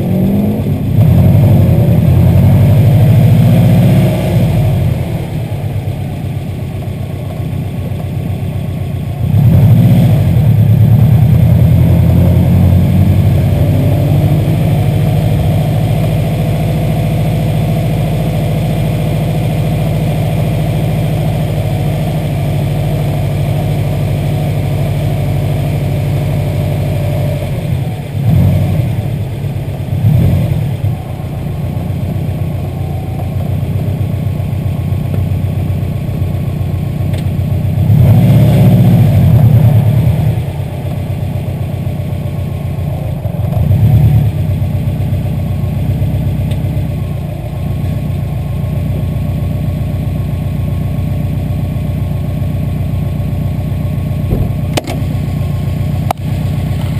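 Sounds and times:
engine throttle surges: 0:00.0 - 0:07.1, 0:09.2 - 0:48.5, 0:54.0 - 0:56.9
car engine running: 0:00.0 - 0:56.9.

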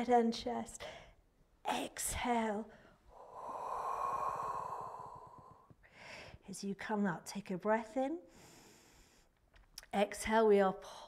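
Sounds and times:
woman exhaling forcefully: 0:03.1 - 0:05.7.

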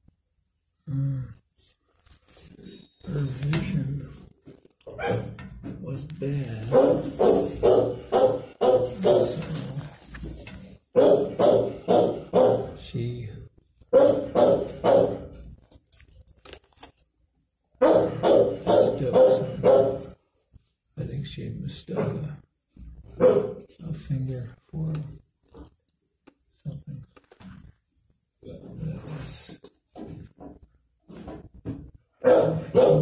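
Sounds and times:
dog barking: 0:04.9 - 0:05.4, 0:06.7 - 0:09.6, 0:10.9 - 0:12.8, 0:13.9 - 0:15.4, 0:17.8 - 0:20.2, 0:23.2 - 0:23.7, 0:32.2 - 0:33.0.

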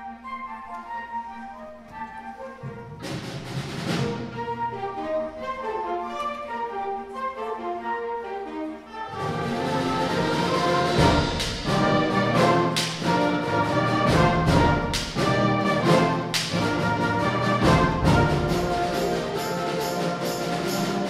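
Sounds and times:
concert band with brass: 0:00.0 - 0:21.0
sharp percussion hits: 0:09.3 - 0:21.0.

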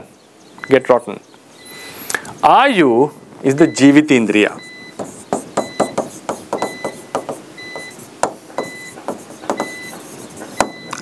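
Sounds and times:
stylus tapping on glass screen: 0:05.0 - 0:10.0.

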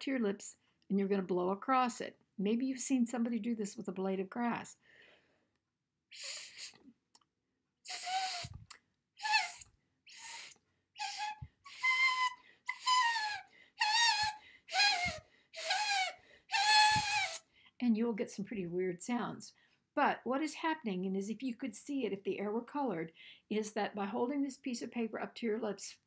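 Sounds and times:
paper whistle blows: 0:07.8 - 0:08.6, 0:09.2 - 0:17.4.

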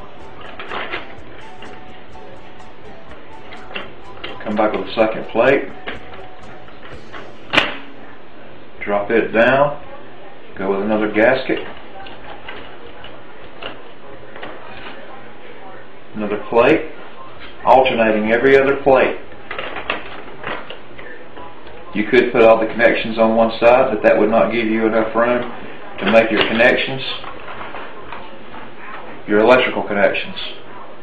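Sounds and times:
background music: 0:00.0 - 0:08.9.

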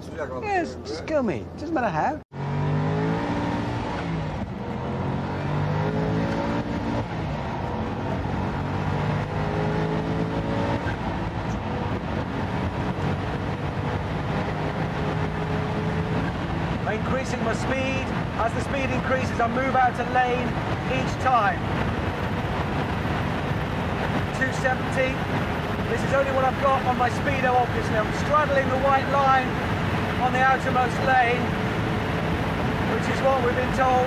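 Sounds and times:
person speaking: 0:00.0 - 0:02.2
car engine at full throttle: 0:02.3 - 0:34.0.

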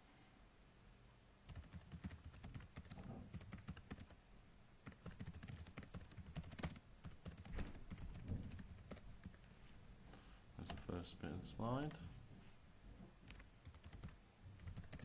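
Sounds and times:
typing on keyboard: 0:01.5 - 0:04.2, 0:04.8 - 0:09.4, 0:13.2 - 0:15.0.

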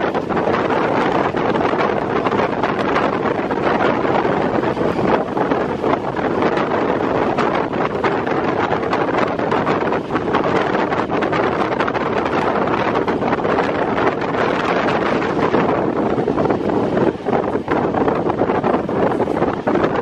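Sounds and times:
train running noise: 0:00.0 - 0:20.0
wind buffeting microphone: 0:00.0 - 0:20.0.

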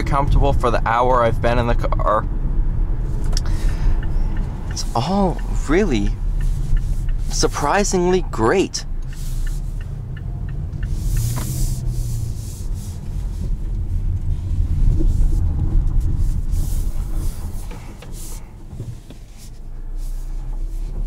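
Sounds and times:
car engine rumble in cabin: 0:00.0 - 0:21.0
road and tyre noise: 0:00.0 - 0:21.0.

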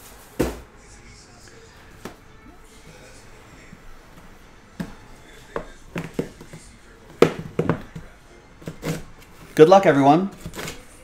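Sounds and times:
boxes knocking on table: 0:05.6 - 0:06.6, 0:07.2 - 0:09.0.

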